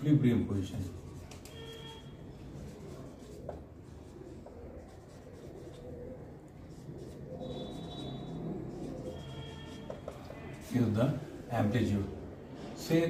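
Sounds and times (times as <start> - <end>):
marker scratching on whiteboard: 0.6 - 12.2
marker tip squeaking: 1.2 - 2.2, 6.8 - 10.6.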